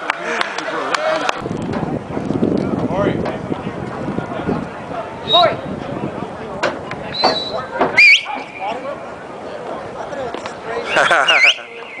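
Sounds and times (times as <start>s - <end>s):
crowd hubbub: 0.0s - 12.0s.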